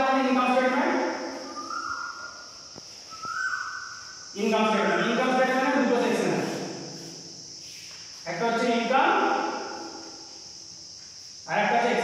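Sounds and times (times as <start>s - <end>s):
high-pitched hiss: 0.0s - 12.0s.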